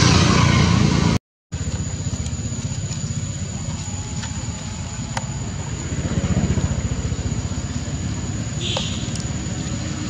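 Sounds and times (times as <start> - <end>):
small engine running: 0.0 - 10.0.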